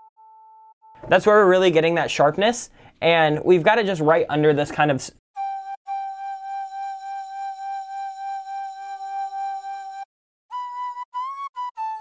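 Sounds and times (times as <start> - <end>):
flute-like synth lead: 5.4 - 12.0.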